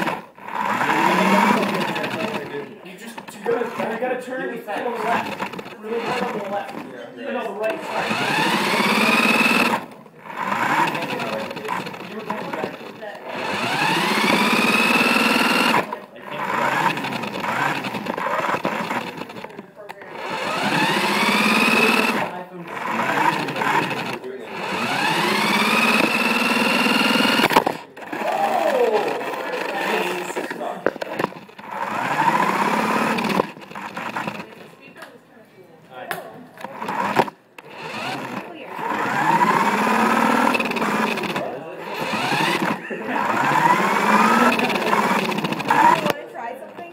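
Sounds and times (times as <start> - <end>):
toy car electric motor whining: 0.0 - 34.8, 36.6 - 46.9.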